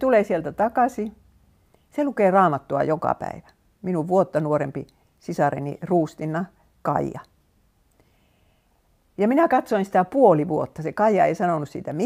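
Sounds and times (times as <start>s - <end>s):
woman speaking: 0.0s - 1.2s, 1.9s - 7.4s, 9.2s - 12.0s.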